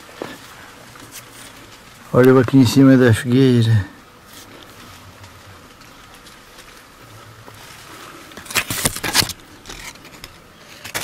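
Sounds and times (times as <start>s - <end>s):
faint background noise: 0.0s - 11.0s
leaves and twigs rustling: 0.0s - 11.0s.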